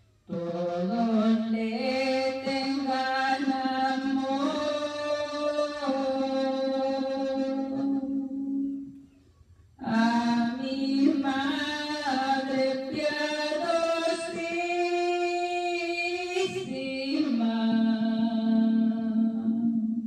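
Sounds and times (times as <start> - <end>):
woman singing unaccompanied: 0.3 - 9.0, 9.8 - 20.0.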